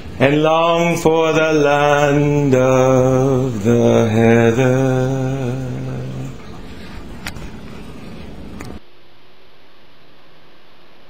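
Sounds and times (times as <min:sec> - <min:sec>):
steady hiss: 0:00.0 - 0:08.8.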